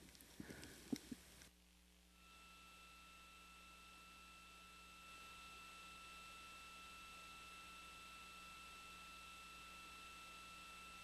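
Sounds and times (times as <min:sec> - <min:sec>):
faint clicks: 0:00.0 - 0:01.5
faint hiss with high tone: 0:02.1 - 0:11.0.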